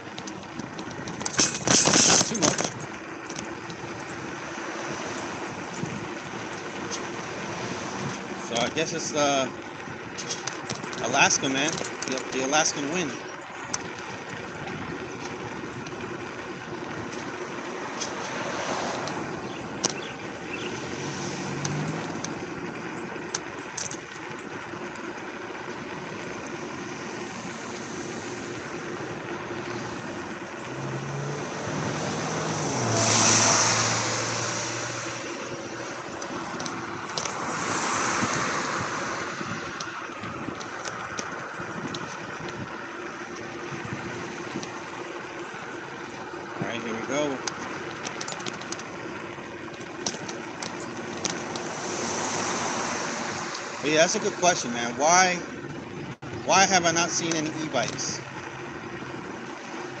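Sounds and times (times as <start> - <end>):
cars passing: 0.0 - 60.0
wind and road noise: 0.0 - 60.0.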